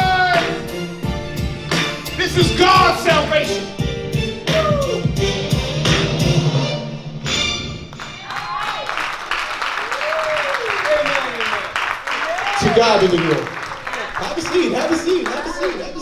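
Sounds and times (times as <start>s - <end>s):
congregation clapping and calling out: 8.0s - 16.0s.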